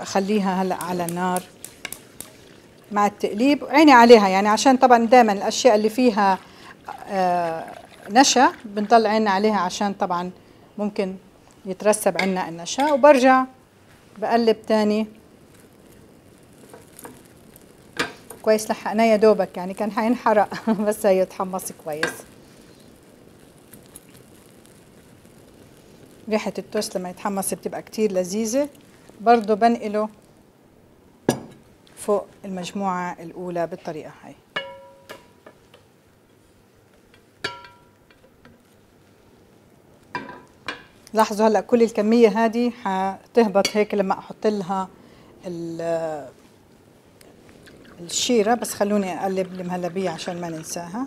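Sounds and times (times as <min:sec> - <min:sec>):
small clicks and faint scraping: 0:00.7 - 0:02.4, 0:15.5 - 0:18.5, 0:22.0 - 0:27.0, 0:47.2 - 0:48.1
ringing clink on glass bowl: 0:34.6 - 0:35.1.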